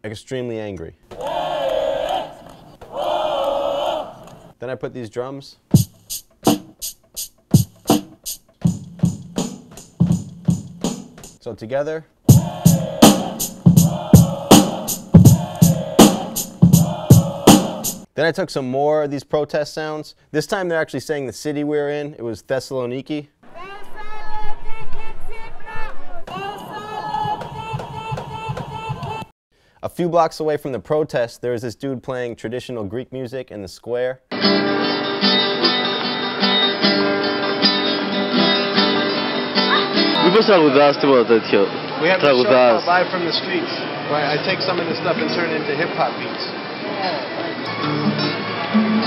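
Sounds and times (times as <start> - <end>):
hip-hop drum beat: 5.7 - 11.4, 12.3 - 18.1, 27.1 - 29.3
protesters chanting through megaphone: 12.3 - 18.1.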